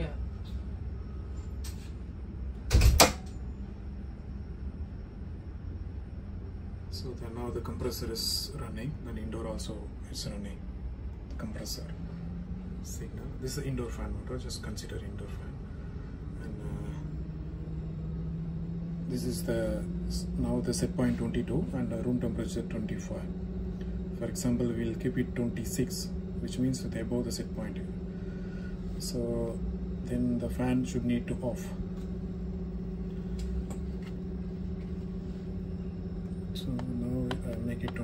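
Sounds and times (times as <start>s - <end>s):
air conditioner fan hum: 0.0s - 38.0s
steady tone: 4.6s - 38.0s.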